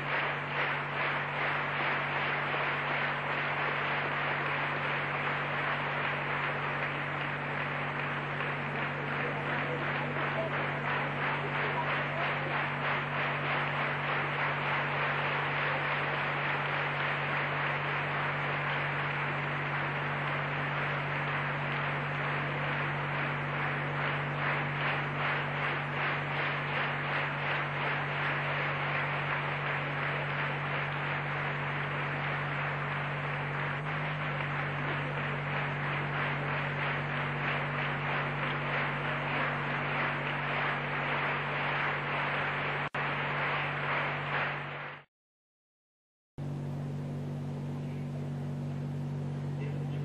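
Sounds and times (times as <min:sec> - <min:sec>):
low mains hum: 0:00.0 - 0:44.8, 0:46.4 - 0:50.0
steady noise: 0:00.0 - 0:45.0.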